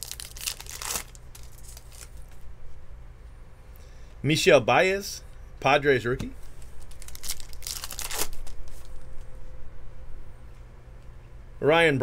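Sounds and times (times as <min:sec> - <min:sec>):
foil wrapper tearing and crinkling: 0:00.0 - 0:02.4, 0:06.6 - 0:08.9
cards rustling: 0:00.0 - 0:02.5, 0:06.2 - 0:09.3.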